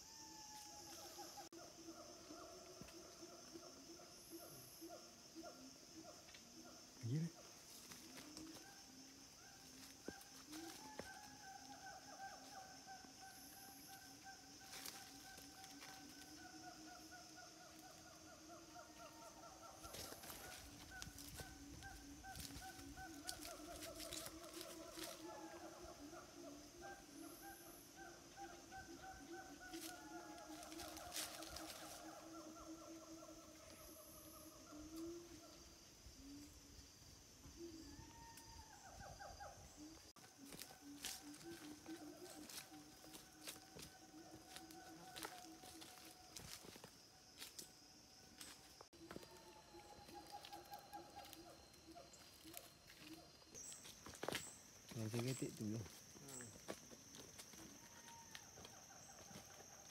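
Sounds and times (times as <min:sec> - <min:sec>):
high-pitched insect drone: 0:00.0 - 0:59.9.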